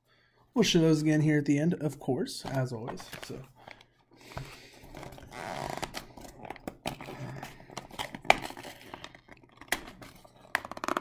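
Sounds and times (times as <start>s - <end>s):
cardboard tearing: 4.9s - 7.2s.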